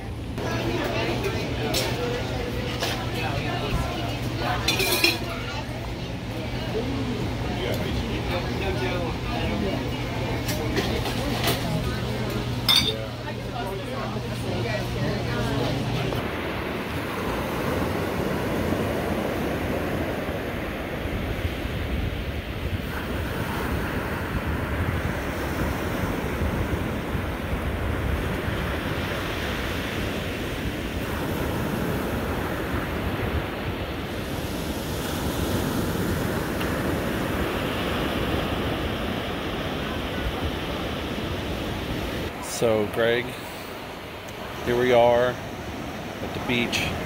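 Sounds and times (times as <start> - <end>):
ocean surf breaking: 0.0 - 47.0.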